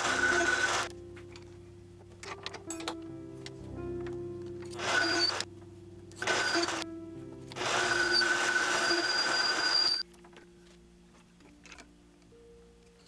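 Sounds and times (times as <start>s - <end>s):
lathe cutting metal with high whine: 0.0s - 0.9s, 4.8s - 5.4s, 6.2s - 6.8s, 7.6s - 10.0s
background music: 0.0s - 13.0s.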